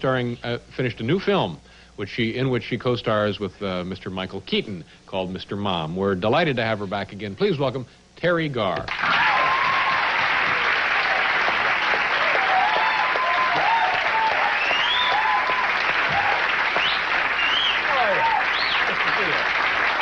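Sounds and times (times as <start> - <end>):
shouts and whoops: 8.9 - 11.4, 12.1 - 17.0, 17.6 - 19.3
audience applauding and cheering: 8.9 - 20.0.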